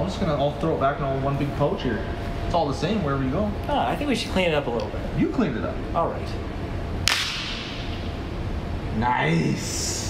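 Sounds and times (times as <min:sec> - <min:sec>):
whip crack with hiss: 0:07.0 - 0:07.8.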